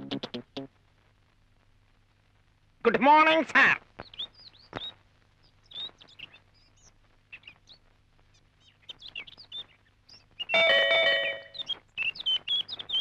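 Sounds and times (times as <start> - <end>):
birds chirping: 4.0 - 13.0.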